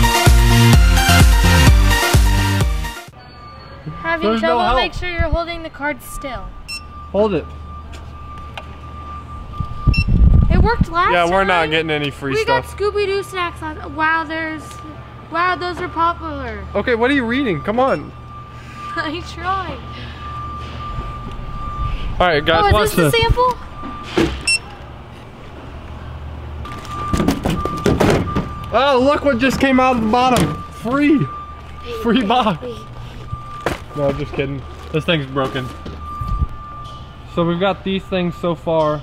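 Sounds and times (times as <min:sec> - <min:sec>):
steady high electronic tone: 0:00.0 - 0:24.0, 0:28.5 - 0:38.7
short electronic beep: 0:03.1 - 0:05.0, 0:05.8 - 0:11.4, 0:15.6 - 0:24.8
loud handling thump: 0:27.1 - 0:28.6.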